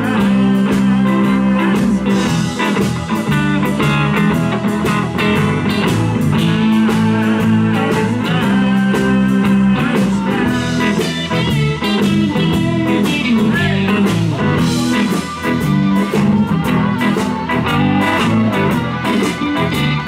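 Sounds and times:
blues band playing: 0:00.0 - 0:20.0
harmonica wailing: 0:00.0 - 0:20.0.

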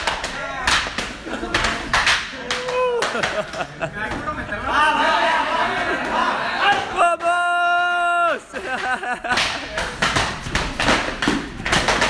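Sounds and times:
group shouting: 0:04.7 - 0:08.6
long held shout: 0:06.6 - 0:08.5.

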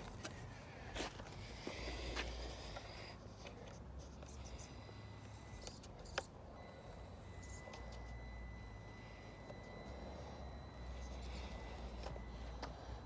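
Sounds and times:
faint high whine: 0:04.2 - 0:13.0.

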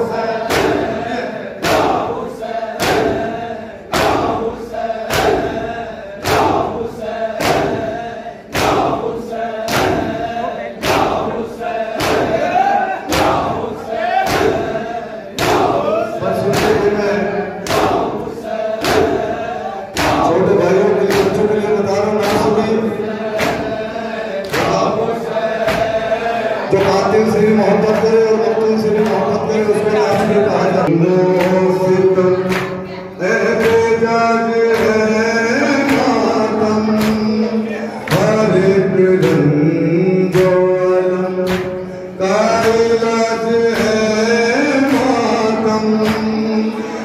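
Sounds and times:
men chanting: 0:00.0 - 0:47.0
hands slapping chests: 0:08.5 - 0:09.0, 0:10.8 - 0:11.2, 0:12.0 - 0:12.4, 0:13.1 - 0:13.6, 0:14.2 - 0:14.7, 0:15.4 - 0:15.8, 0:17.6 - 0:18.2, 0:18.8 - 0:19.3, 0:19.9 - 0:20.3, 0:23.3 - 0:23.8, 0:24.4 - 0:25.0, 0:25.6 - 0:26.0, 0:32.5 - 0:32.8, 0:36.9 - 0:37.3, 0:41.4 - 0:41.8, 0:46.0 - 0:46.4
person leading over a microphone: 0:26.6 - 0:47.0.

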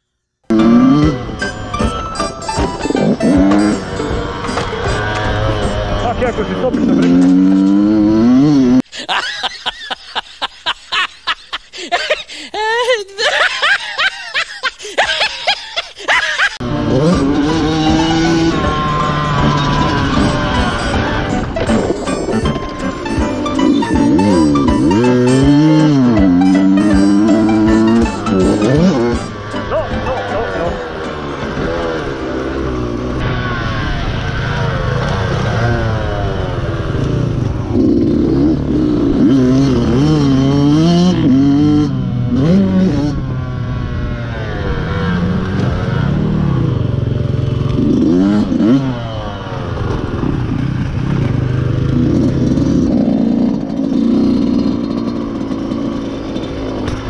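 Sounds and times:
dirt bike engine revving: 0:00.4 - 0:08.9, 0:16.4 - 0:57.0.

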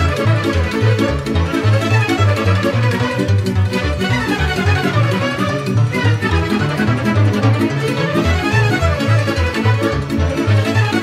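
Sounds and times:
lead violin: 0:00.0 - 0:11.0
regular bass beat: 0:00.0 - 0:11.0.

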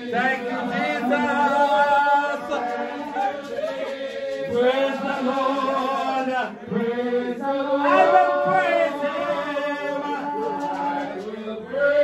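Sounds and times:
congregation chanting: 0:00.0 - 0:12.0.

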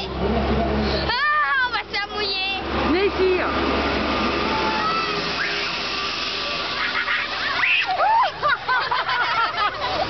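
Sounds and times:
liquid spraying and splashing: 0:02.7 - 0:08.1.

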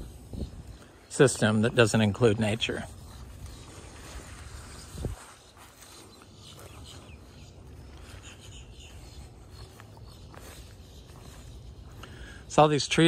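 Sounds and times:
faint bird chirps: 0:00.0 - 0:13.0.

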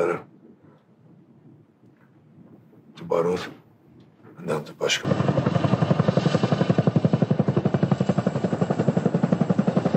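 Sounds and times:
helicopter rotor blades thumping: 0:04.0 - 0:09.9
helicopter engine and rotor rush: 0:04.8 - 0:09.9.

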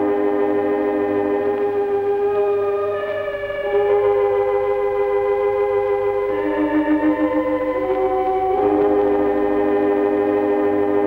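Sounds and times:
sustained organ chords: 0:00.0 - 0:11.0.

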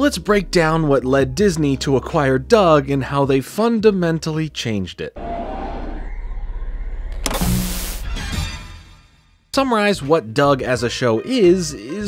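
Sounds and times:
low fluttering hum: 0:05.2 - 0:08.0
low buzz: 0:05.2 - 0:08.9
loud hissing static: 0:07.2 - 0:08.1.

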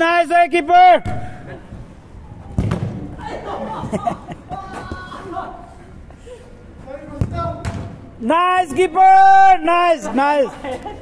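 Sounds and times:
ball being kicked: 0:02.5 - 0:03.1, 0:07.2 - 0:08.0.

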